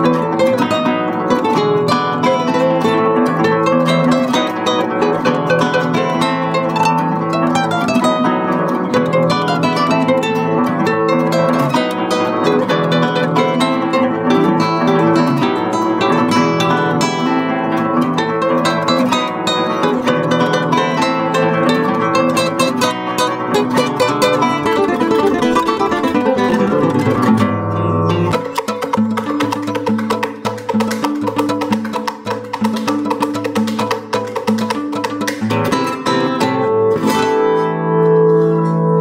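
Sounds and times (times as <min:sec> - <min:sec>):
classical guitar duo: 0:00.0 - 0:39.0.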